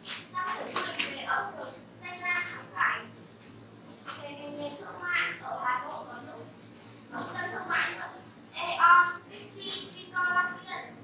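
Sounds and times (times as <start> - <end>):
child speaking: 0.3 - 3.2, 4.1 - 6.5, 7.1 - 11.0.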